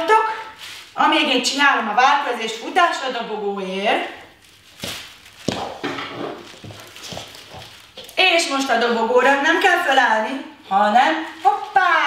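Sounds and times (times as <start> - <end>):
barefoot footsteps on hard floor: 4.7 - 8.2.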